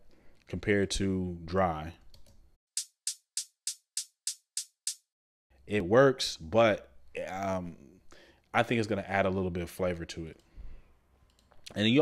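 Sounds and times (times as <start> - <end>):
hi-hat ticks: 2.8 - 5.1.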